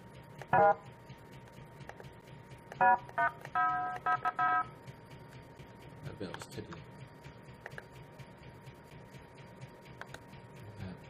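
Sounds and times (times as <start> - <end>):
electronic synth tones: 0.5 - 1.0, 2.7 - 4.8.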